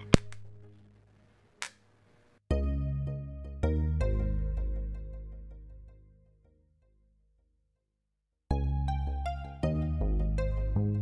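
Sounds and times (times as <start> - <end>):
electric arc snap: 0.0 - 0.9.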